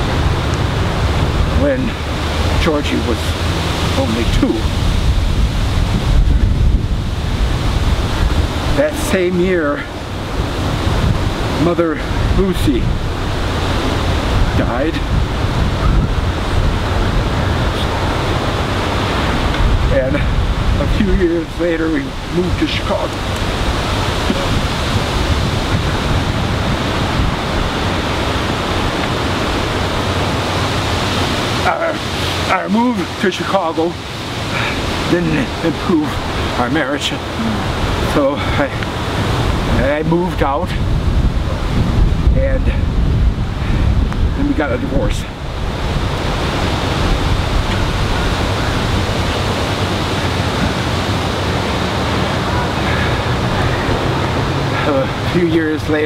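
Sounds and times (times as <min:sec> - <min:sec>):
wind blowing across microphone: 0:00.0 - 0:56.0.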